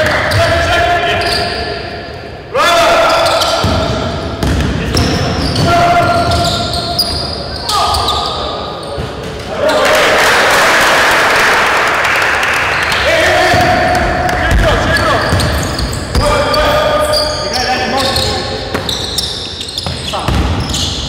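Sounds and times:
sneakers squeaking: 0.0 - 9.8, 12.7 - 21.0
basketball bouncing on court floor: 3.5 - 7.1, 13.4 - 16.8, 18.1 - 21.0
players calling out: 4.9 - 10.7, 12.3 - 21.0.

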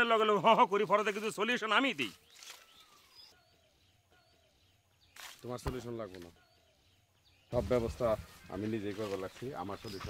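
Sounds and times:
faint bird chirps: 1.5 - 10.0.

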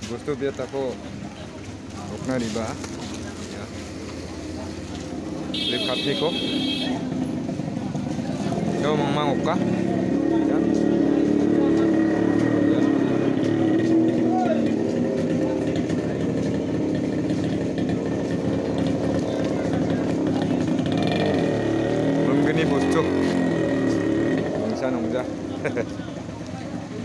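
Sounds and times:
motorcycles: 0.0 - 27.0
vehicle engines running: 0.0 - 27.0
voices: 0.0 - 27.0.

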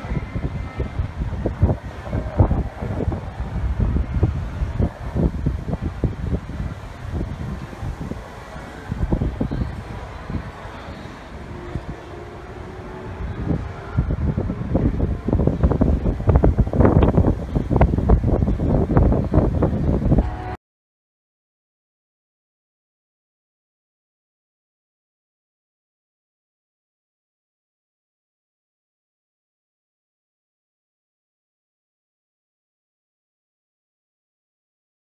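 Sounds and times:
wind buffeting microphone: 0.0 - 20.6.

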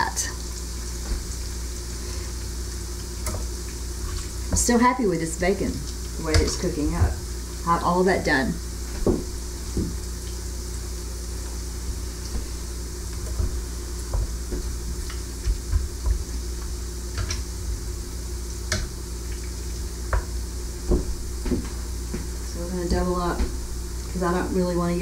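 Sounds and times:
bacon sizzling in grease: 0.0 - 25.0.

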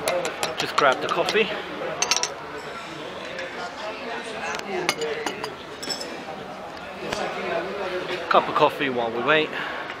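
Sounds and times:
spoon clinking cup and saucer: 0.0 - 1.4, 2.0 - 2.4, 4.9 - 6.2
murmuring voices: 0.0 - 10.0.

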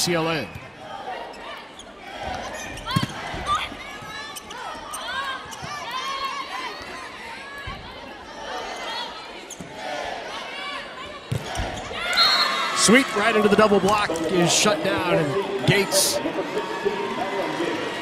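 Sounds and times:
crowd din in arena: 0.0 - 18.0.

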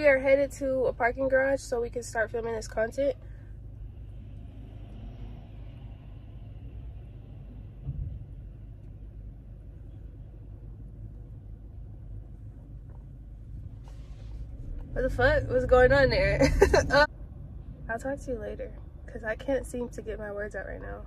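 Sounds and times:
car engine and road rumble: 0.0 - 21.0
brief thump: 7.8 - 8.2.

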